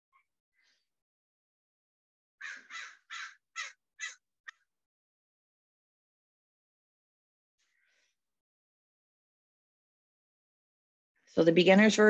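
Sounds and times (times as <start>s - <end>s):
crow cawing: 2.4s - 4.2s.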